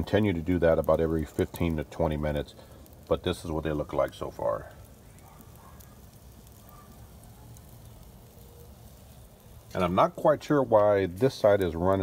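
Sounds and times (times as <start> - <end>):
crackling and sizzling on a grill: 0.0 - 12.0.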